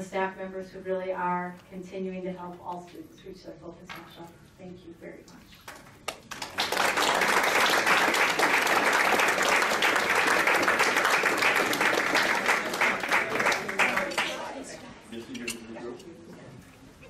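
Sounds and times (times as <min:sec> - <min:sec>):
audience applauding: 0:06.1 - 0:14.6.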